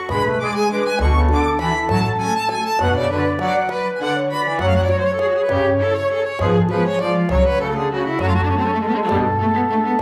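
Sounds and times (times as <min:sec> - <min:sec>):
cello low notes: 0:00.0 - 0:10.0
violin: 0:00.0 - 0:10.0.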